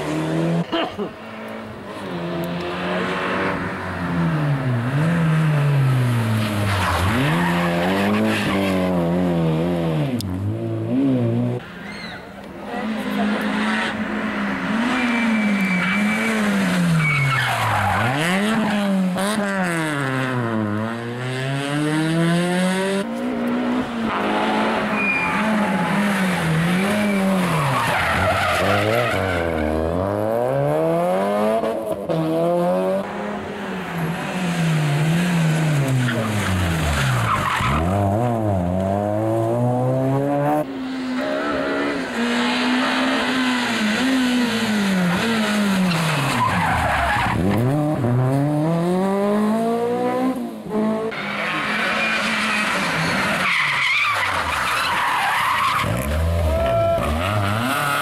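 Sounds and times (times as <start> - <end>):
rally car engines revving: 0.0 - 58.0
tyre squeal: 11.7 - 12.3, 14.9 - 18.7, 24.9 - 29.7.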